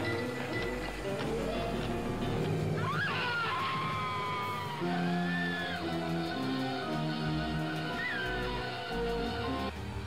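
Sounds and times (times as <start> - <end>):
dramatic music with low notes: 0.0 - 10.0.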